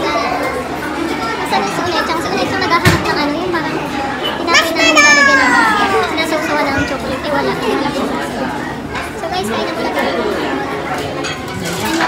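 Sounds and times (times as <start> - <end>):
crowd chatter: 0.0 - 12.0
child calling out: 4.6 - 6.2.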